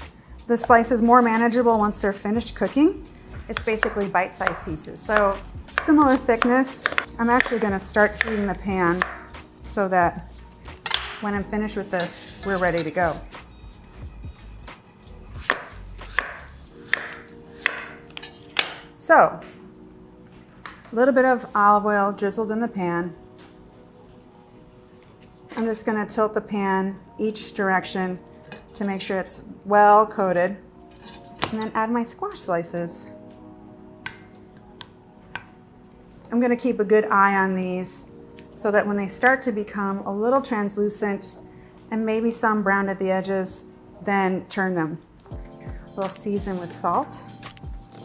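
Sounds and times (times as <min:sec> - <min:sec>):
faint background music: 0:00.0 - 0:48.0
knife slicing on wooden board: 0:46.6 - 0:48.0.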